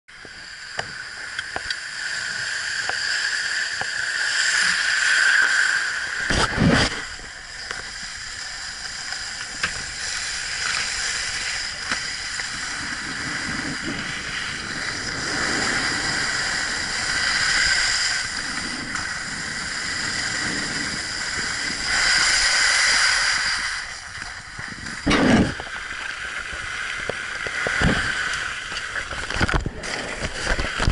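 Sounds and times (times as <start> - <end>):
skis scraping over snow: 4.1 - 30.9.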